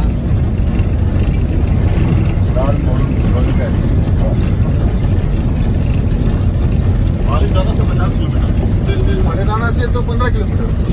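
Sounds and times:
moving vehicle rumble: 0.0s - 10.9s.

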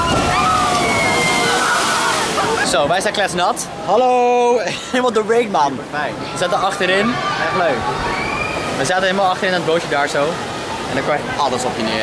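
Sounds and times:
water rushing and splashing: 0.0s - 12.0s.

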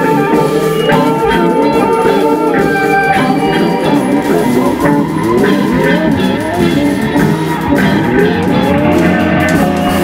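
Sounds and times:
guitar notes sliding in pitch: 0.0s - 10.0s
rock band music: 0.0s - 10.0s.

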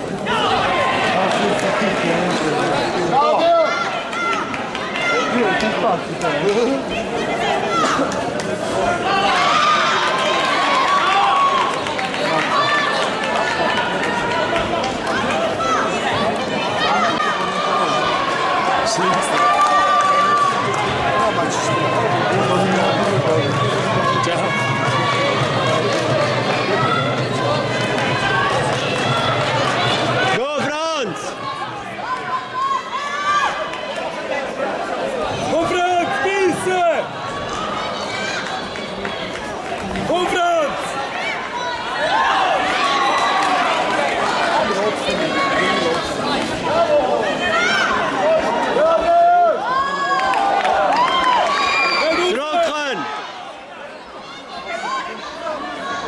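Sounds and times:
background chatter: 0.0s - 56.0s
voices talking and calling out: 0.0s - 56.0s.

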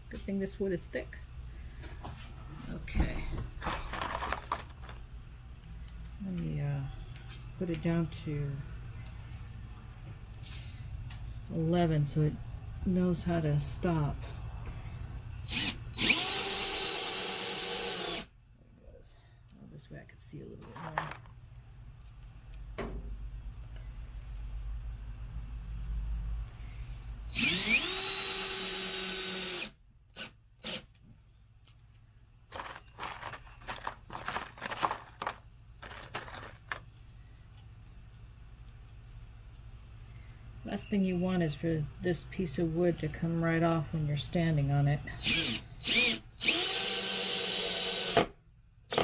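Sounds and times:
cordless drill motor whine: 15.5s - 18.3s, 27.3s - 30.8s, 45.2s - 48.2s.

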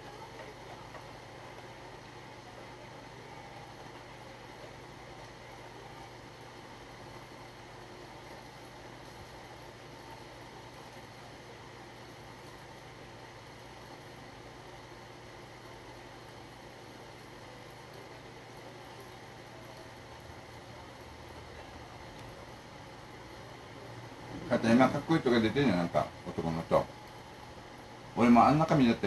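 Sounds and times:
room tone hum and hiss: 0.0s - 29.0s.

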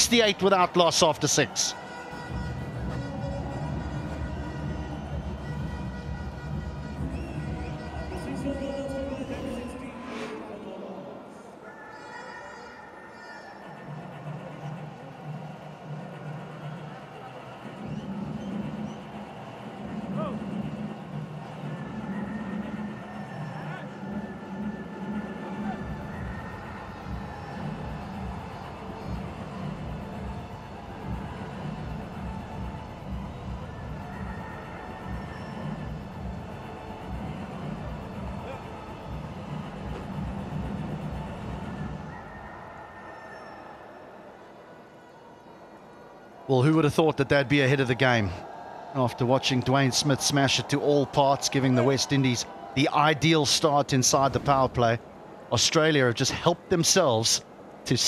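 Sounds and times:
music with low beat: 24.0s - 42.0s.

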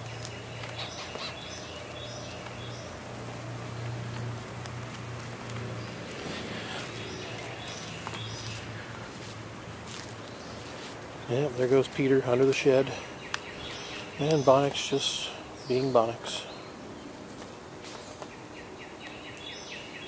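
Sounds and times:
small birds chirping: 0.0s - 20.0s
steady low hum: 0.0s - 20.0s.

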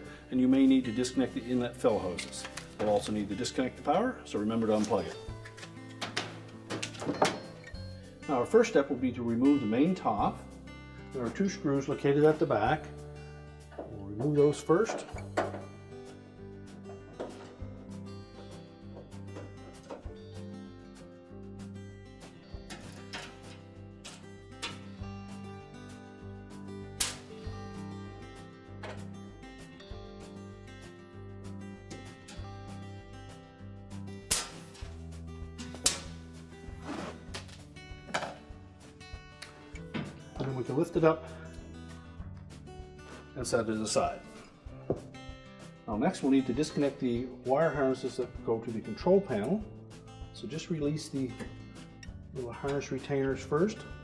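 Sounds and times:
soft acoustic guitar music: 0.0s - 54.0s.

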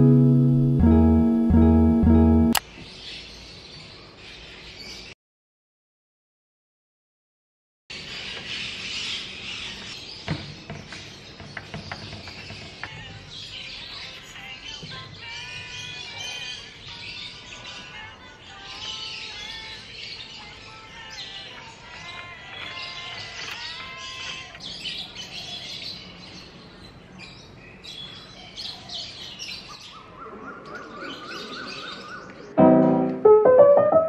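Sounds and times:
piano music: 0.0s - 2.6s, 32.6s - 34.0s
soft background music: 0.0s - 2.6s
small birds chirping: 7.9s - 32.6s.

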